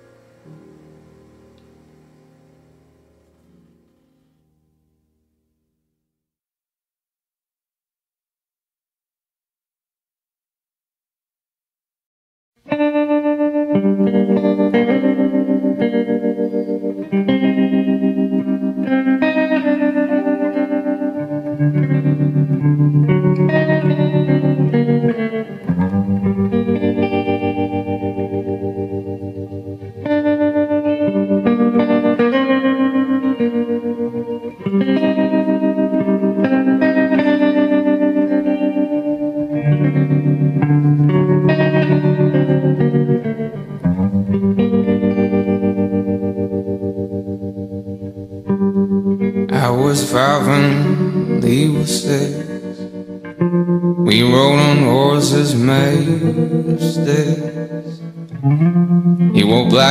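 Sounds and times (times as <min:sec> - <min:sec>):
electric guitar chords with tremolo: 0:00.0 - 0:05.1, 0:12.6 - 0:59.9.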